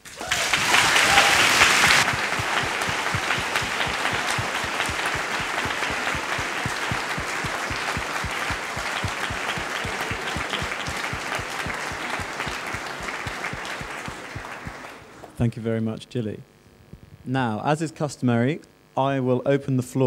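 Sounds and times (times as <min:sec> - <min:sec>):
audience applauding: 0:00.0 - 0:15.4.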